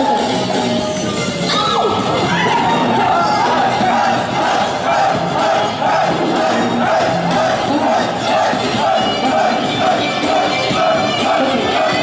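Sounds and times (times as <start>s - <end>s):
crowd singing and shouting: 0.0s - 12.0s
live amplified pop song: 0.0s - 12.0s.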